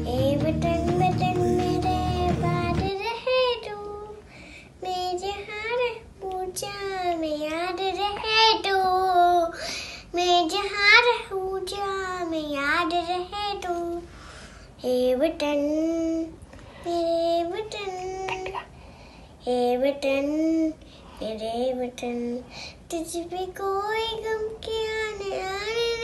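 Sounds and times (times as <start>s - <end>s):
girl singing unaccompanied: 0.0s - 18.8s, 19.4s - 26.0s.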